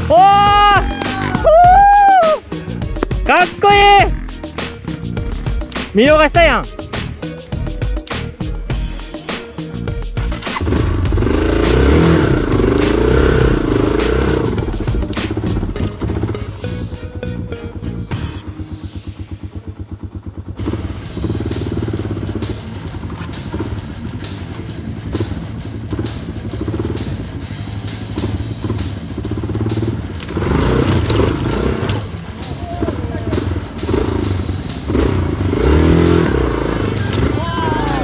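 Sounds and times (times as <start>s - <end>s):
raised voices: 0.0s - 2.4s, 37.0s - 38.0s
motorcycle engine revving: 0.0s - 6.0s, 6.6s - 38.0s
electronic music with beat: 0.0s - 19.3s.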